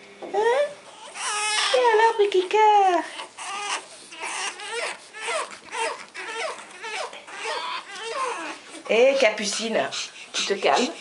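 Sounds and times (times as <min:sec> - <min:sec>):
puppy whining: 0:00.4 - 0:02.1, 0:02.9 - 0:11.0.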